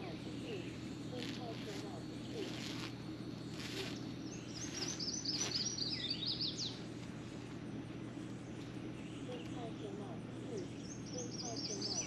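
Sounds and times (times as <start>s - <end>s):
low hum: 0.0s - 12.0s
songbird chirping: 0.0s - 12.0s
brief rustles: 1.2s - 4.0s.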